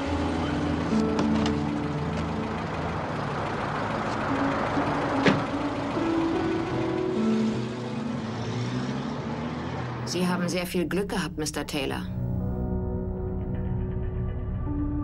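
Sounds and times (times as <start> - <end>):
car engine pulling away: 0.0 - 10.6
film score low held notes: 10.0 - 15.0.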